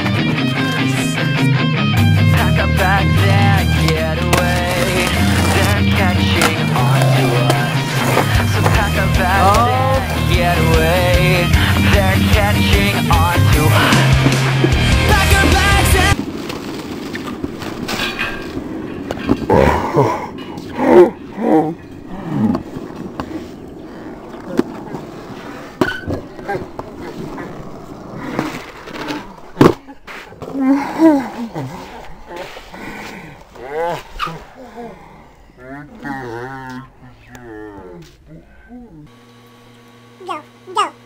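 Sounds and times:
loud music: 0.0s - 16.2s
skateboards rolling on rough concrete: 0.0s - 34.7s
skateboards clacking on ground: 2.4s - 34.4s.

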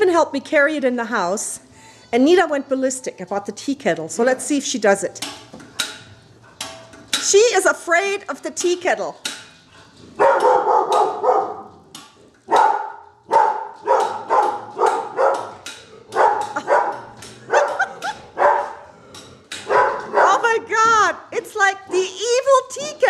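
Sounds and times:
small dog barking rapidly: 10.2s - 11.7s, 12.5s - 15.6s, 16.2s - 18.8s.

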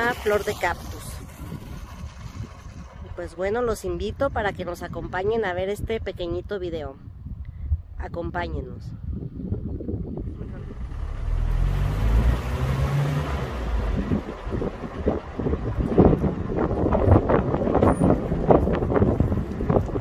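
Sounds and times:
car engine pulling away: 0.0s - 3.2s, 10.3s - 20.0s
road noise: 0.0s - 8.0s, 9.0s - 20.0s
wind buffeting microphone: 0.0s - 20.0s.

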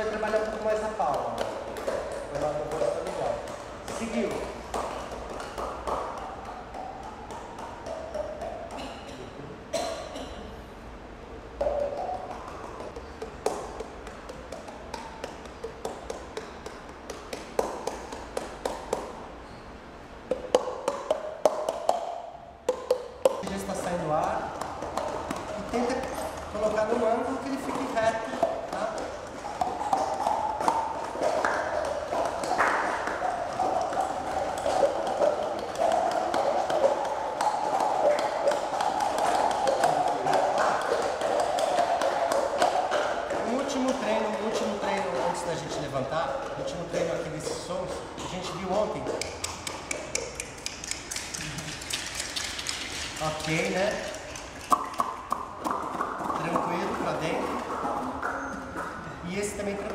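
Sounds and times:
sharp hand claps: 0.0s - 9.0s, 11.6s - 19.4s, 20.3s - 59.0s
cupped-hand taps: 11.6s - 19.2s, 20.3s - 47.8s.

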